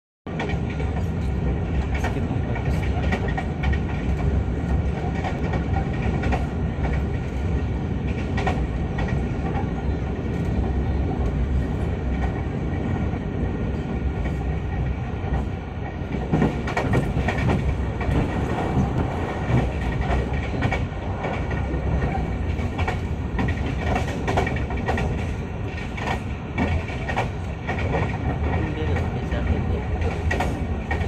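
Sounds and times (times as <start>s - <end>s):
train wheels rumbling on rails: 0.3s - 31.0s.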